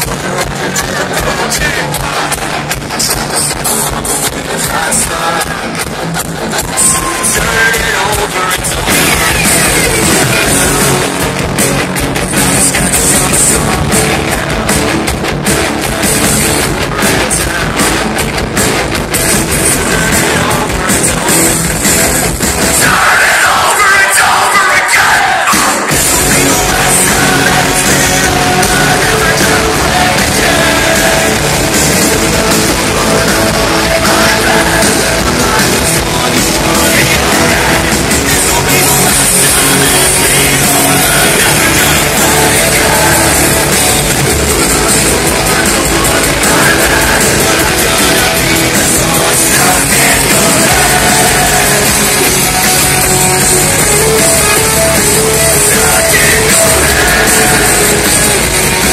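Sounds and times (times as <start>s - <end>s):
live metalcore band playing: 0.0s - 58.9s.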